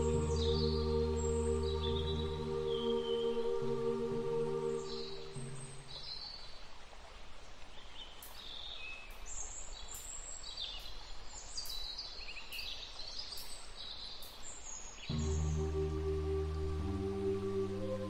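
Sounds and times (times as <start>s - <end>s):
low drone: 0.0s - 5.8s, 15.1s - 18.0s
ambient music tones: 0.0s - 6.0s, 15.1s - 18.0s
birds chirping: 0.0s - 6.5s, 8.4s - 18.0s
outdoor background hiss: 0.0s - 18.0s.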